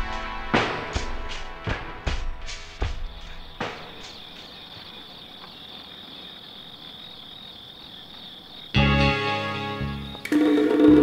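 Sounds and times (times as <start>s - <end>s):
loud music: 0.0s - 3.0s
crickets chirring: 0.8s - 11.0s.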